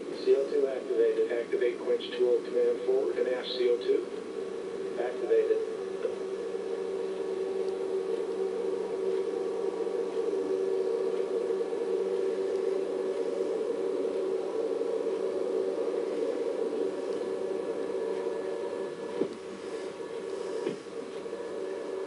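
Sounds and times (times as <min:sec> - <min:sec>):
muffled rocket exhaust rushing: 0:00.0 - 0:22.0.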